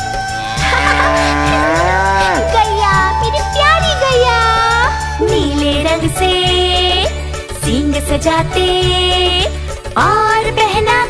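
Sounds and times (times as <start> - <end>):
children's song instrumental: 0.0 - 11.0
cow mooing: 0.4 - 2.6.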